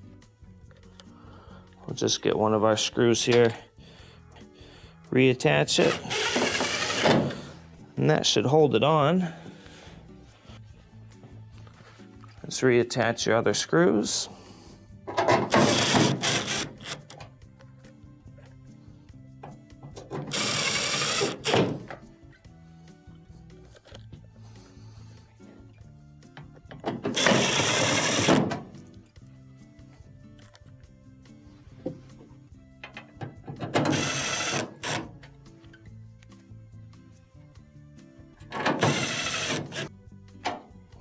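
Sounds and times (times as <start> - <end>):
background music: 0.0 - 41.0
impact driver driving screws: 5.8 - 7.5, 15.4 - 17.1, 20.0 - 21.9, 27.0 - 28.6, 33.7 - 35.1, 38.6 - 39.9.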